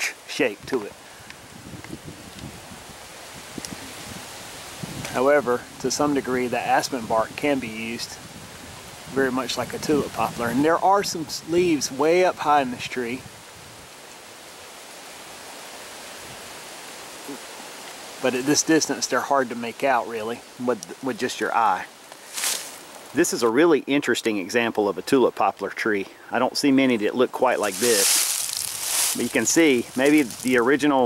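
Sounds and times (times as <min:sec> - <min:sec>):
outdoor background hiss: 0:00.0 - 0:31.0
wind rustling trees: 0:00.0 - 0:31.0
wind buffeting microphone: 0:00.6 - 0:12.0.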